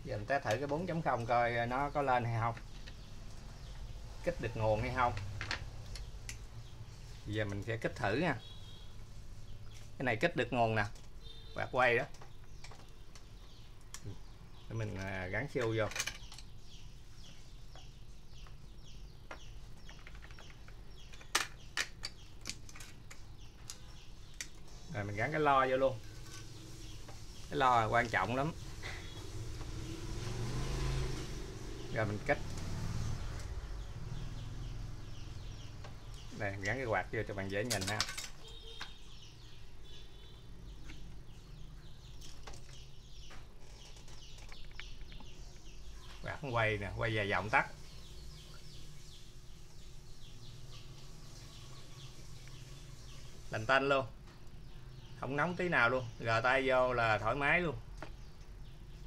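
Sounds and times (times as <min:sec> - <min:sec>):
small birds chirping: 0:00.0 - 0:59.0.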